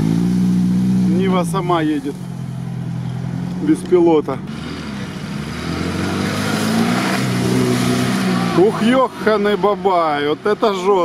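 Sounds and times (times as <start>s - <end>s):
engine revving under load: 0.0s - 11.0s.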